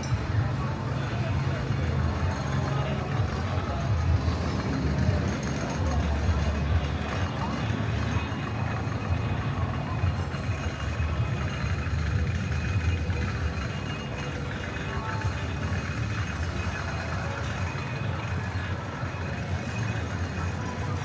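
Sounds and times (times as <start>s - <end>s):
amusement park rumble: 0.0s - 21.0s
faint background music: 0.0s - 21.0s.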